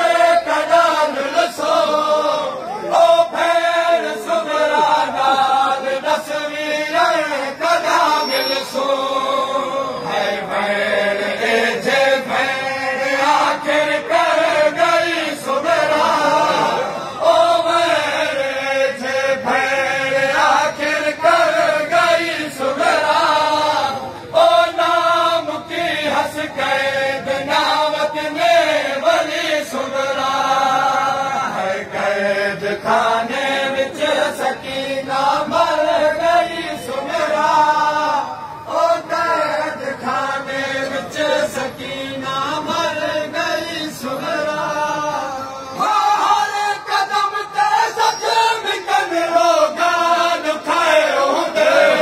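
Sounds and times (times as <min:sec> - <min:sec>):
men chanting a lament: 0:00.0 - 0:52.0.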